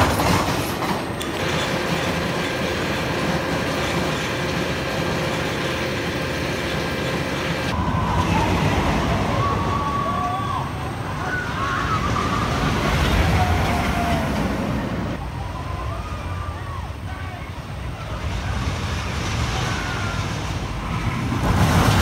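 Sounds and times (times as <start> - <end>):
roller coaster rumbling on track: 0.0 - 22.0.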